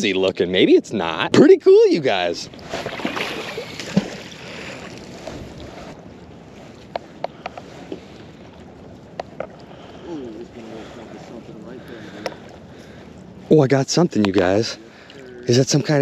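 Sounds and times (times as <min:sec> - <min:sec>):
water noise: 0:00.0 - 0:16.0
wind noise: 0:02.4 - 0:14.4
magnet splashing into water: 0:02.7 - 0:04.4.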